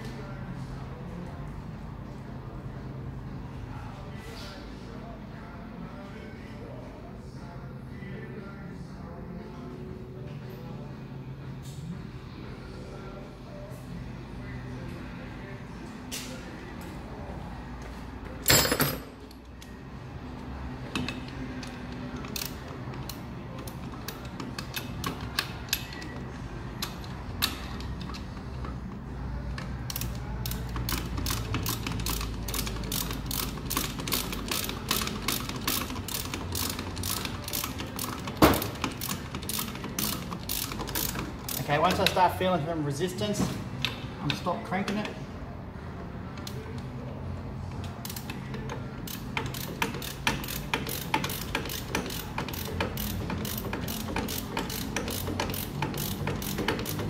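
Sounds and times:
ratchet wrench clicking: 20.9 - 26.2, 26.8 - 28.2, 29.9 - 42.2, 48.0 - 57.0.

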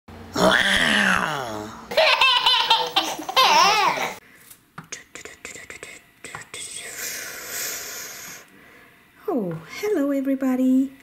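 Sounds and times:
person laughing loudly: 1.9 - 4.2.

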